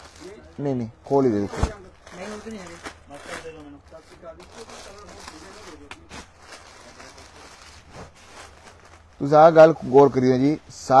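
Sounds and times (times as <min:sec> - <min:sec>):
plastic packaging crinkling: 0:00.0 - 0:10.6.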